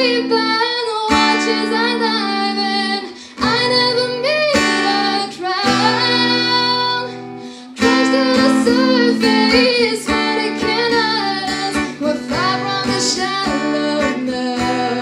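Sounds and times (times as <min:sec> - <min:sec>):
acoustic guitar strumming: 0:00.0 - 0:15.0
woman singing: 0:00.0 - 0:15.0.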